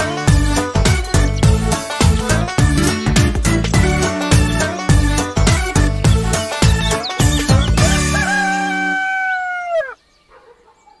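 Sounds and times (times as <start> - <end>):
rooster crowing: 7.8 - 10.0.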